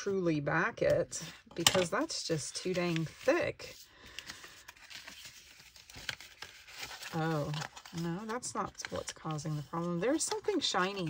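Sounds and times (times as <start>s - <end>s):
thick paper rustling and crinkling: 2.6s - 11.0s.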